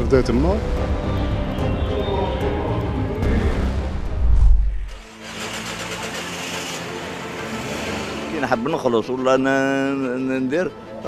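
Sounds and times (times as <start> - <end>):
street noise: 0.0 - 11.0
deep rumble: 3.0 - 5.2
car engine running: 4.8 - 8.4.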